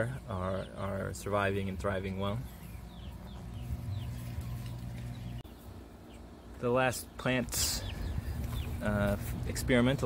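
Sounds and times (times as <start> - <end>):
chickens chirping: 0.0 - 10.0
steady low hum: 0.0 - 10.0.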